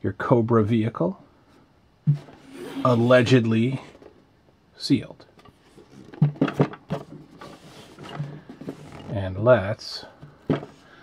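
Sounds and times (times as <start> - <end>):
loose parts rattling: 5.4 - 9.1.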